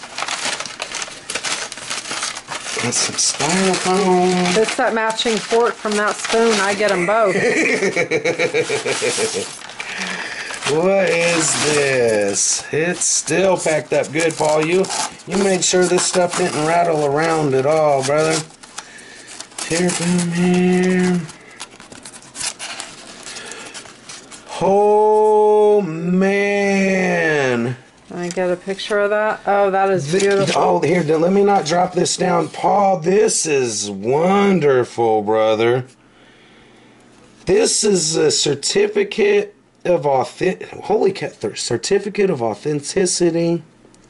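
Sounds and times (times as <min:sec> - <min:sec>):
packing wrap crinkling: 0:00.0 - 0:25.3, 0:26.8 - 0:33.5
styrofoam lid scraping: 0:07.8 - 0:18.7.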